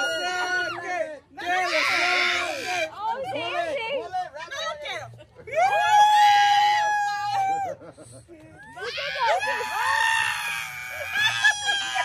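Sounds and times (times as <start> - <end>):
people cheering: 0.0 - 2.8, 5.5 - 7.8, 8.7 - 12.0.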